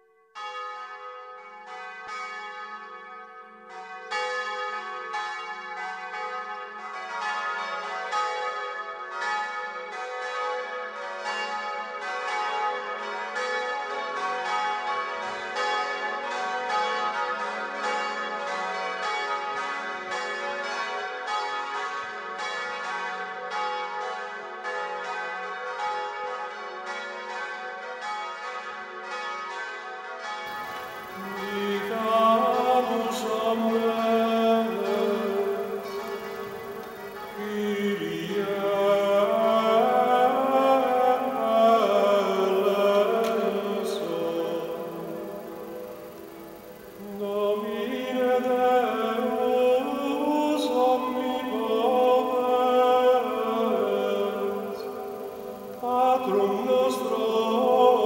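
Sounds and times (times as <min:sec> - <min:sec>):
church bells ringing a peal: 0:00.3 - 0:58.0.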